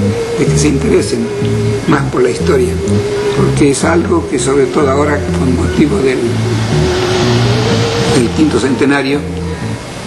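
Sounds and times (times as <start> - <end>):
low hum: 0.0 - 10.0
steady rushing noise: 0.0 - 10.0.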